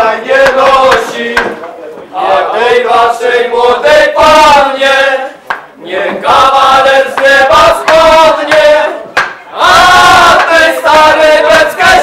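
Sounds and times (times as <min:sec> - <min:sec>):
group singing a carol: 0:00.0 - 0:12.0.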